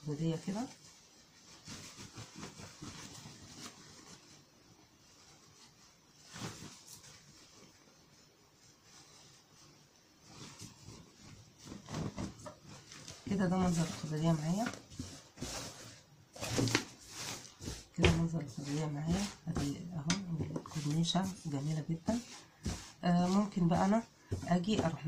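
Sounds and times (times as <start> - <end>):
fabric rustling: 0.0 - 25.0.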